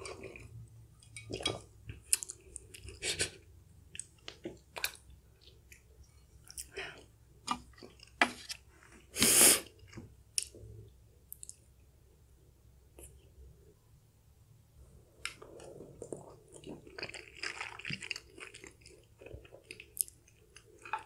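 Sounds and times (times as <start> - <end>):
chewing: 0.0 - 3.3, 15.2 - 21.0.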